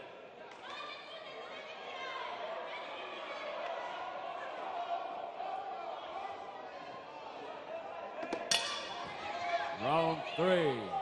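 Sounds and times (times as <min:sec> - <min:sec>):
crowd murmur echoing in hall: 0:00.0 - 0:11.0.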